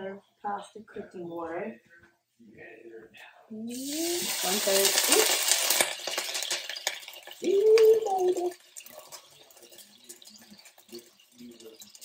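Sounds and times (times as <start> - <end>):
oil sizzling in skillet: 3.7 - 12.0.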